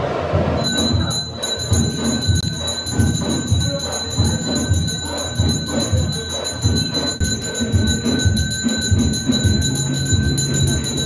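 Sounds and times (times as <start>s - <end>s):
low rhythmic thumps: 0.0s - 11.0s
temple bells ringing: 0.6s - 11.0s.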